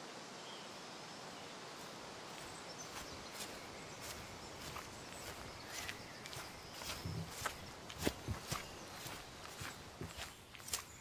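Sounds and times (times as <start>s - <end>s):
faint bird chirps: 2.4s - 11.0s.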